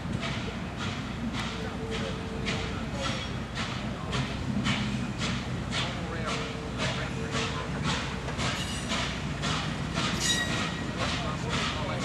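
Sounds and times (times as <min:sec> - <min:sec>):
steam locomotive exhaust chuffs: 0:00.0 - 0:12.0
high wheel squeal: 0:10.1 - 0:10.9.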